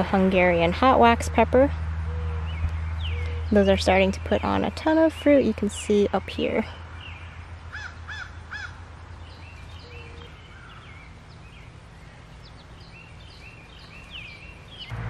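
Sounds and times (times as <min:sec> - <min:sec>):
birds calling: 0:00.0 - 0:15.0.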